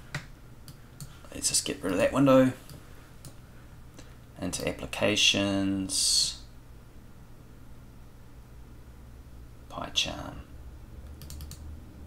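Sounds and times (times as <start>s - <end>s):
low steady hum: 0.0s - 12.0s
computer keyboard clicks: 11.1s - 11.7s.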